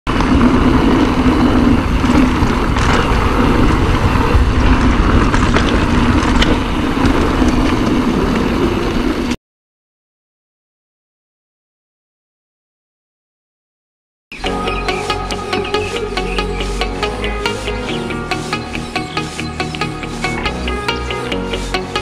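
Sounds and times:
bike clicks and rattles: 0.1 - 9.0
bike tyre and wind noise: 0.1 - 9.4.

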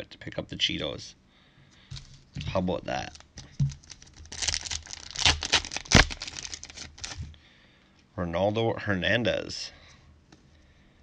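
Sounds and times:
foil wrapper crinkling: 2.9 - 7.3
foil wrapper ripping: 3.0 - 7.2.

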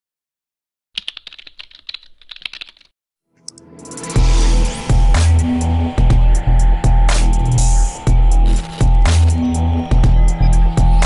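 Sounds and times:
keyboard typing clicks: 1.0 - 2.9
intro music: 3.4 - 11.0.

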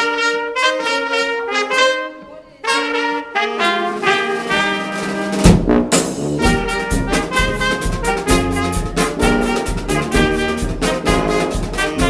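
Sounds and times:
brass band playing: 0.0 - 12.0
drums: 3.2 - 12.0.

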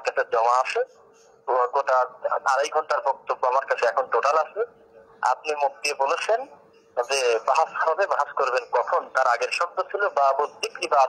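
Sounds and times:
man speaking through phone speaker: 0.0 - 11.0.

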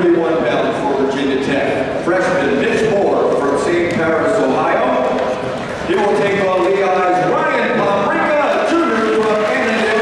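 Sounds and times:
man speaking: 0.0 - 5.2, 5.9 - 10.0.

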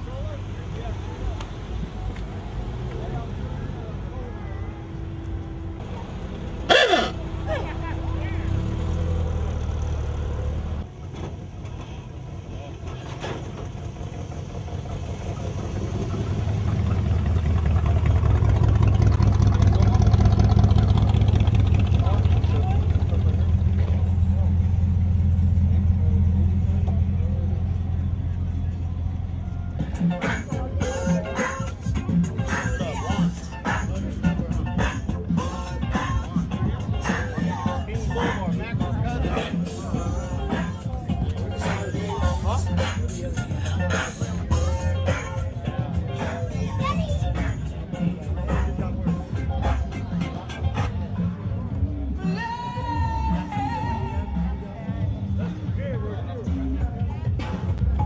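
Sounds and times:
cars driving past: 0.0 - 52.2
deep engine rumble: 0.0 - 58.0
people talking: 0.0 - 58.0.

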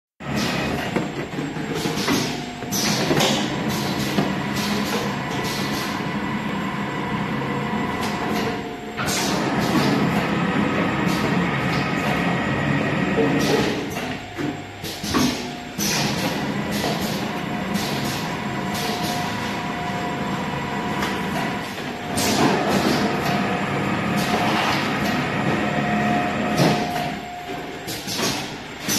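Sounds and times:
machine hiss: 1.7 - 6.6, 12.7 - 28.9.

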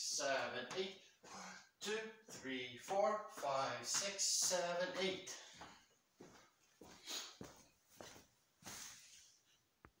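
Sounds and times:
footsteps on hardwood floor: 2.2 - 9.0.

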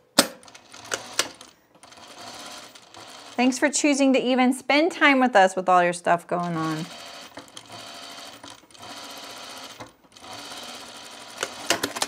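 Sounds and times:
sewing machine running: 0.4 - 3.6, 6.4 - 12.0.

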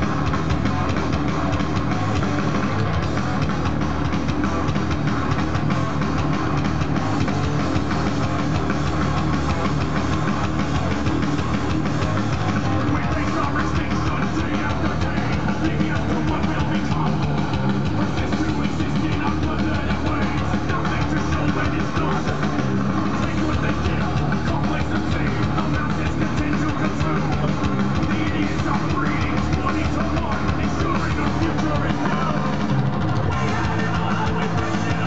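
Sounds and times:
distorted electric guitar riffs: 0.0 - 35.0
drums: 0.0 - 35.0.

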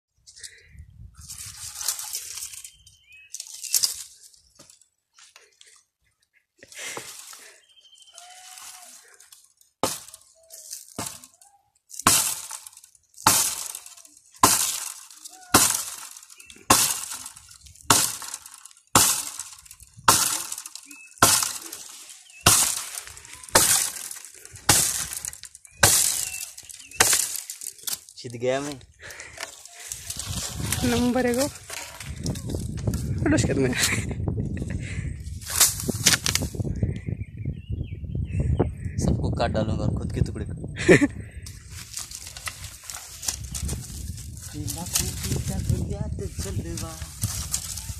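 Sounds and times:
metal tool chopping root: 9.8 - 10.3, 10.9 - 11.4, 12.0 - 28.0.

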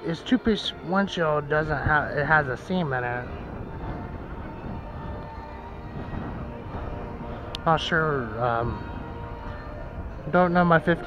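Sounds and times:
low rumble: 1.4 - 11.0.

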